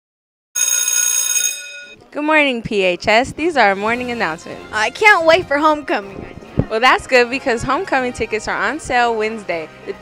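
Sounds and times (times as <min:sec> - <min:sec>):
bell-like chime ringing: 0:00.6 - 0:02.0.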